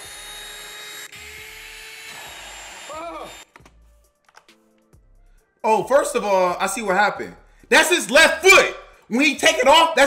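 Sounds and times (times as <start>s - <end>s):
handheld vacuum cleaner whine: 0.0s - 3.5s.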